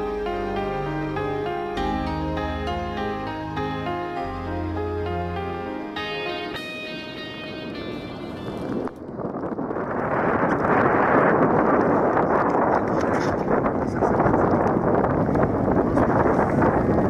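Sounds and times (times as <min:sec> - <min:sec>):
acoustic guitar music: 0:00.0 - 0:09.0
wind on microphone: 0:06.5 - 0:17.0.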